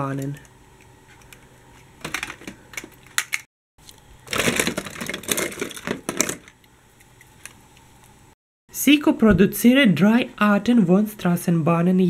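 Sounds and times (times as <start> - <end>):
toy trams clattering in plastic box: 4.3 - 6.5.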